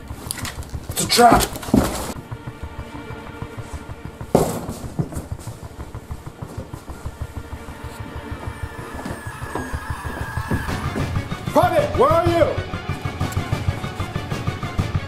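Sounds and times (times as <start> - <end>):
tense film score: 0.0 - 15.0
sudden musical hit: 6.9 - 12.5.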